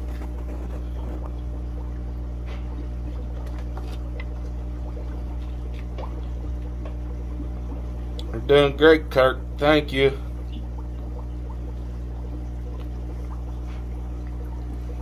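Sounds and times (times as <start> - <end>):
aquarium water bubbling: 0.0 - 15.0
low electric hum: 0.0 - 15.0.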